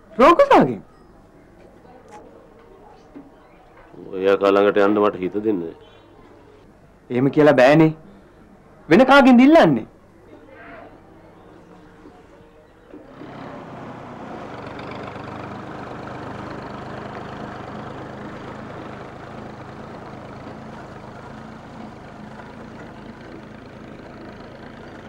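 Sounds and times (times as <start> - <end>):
tractor engine running: 11.9 - 25.0.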